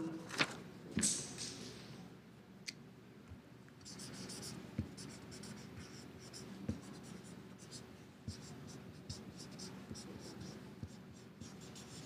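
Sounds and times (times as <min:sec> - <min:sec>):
marker scratching on paper: 0:03.8 - 0:12.0.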